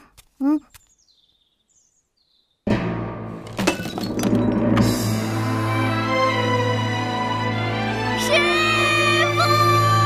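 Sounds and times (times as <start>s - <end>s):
faint high bird chirps: 0.4s - 2.6s.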